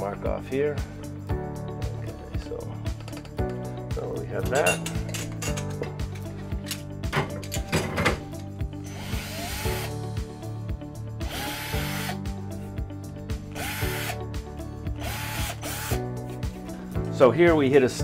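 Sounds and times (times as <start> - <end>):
cordless drill boring into wall: 8.8 - 10.0, 11.2 - 12.2, 13.5 - 14.2, 15.0 - 16.0.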